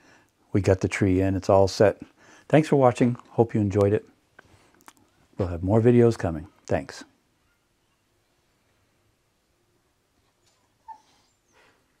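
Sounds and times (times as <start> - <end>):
soft rustle: 4.4 - 5.4
faint squeak: 7.4 - 8.2, 10.2 - 12.0.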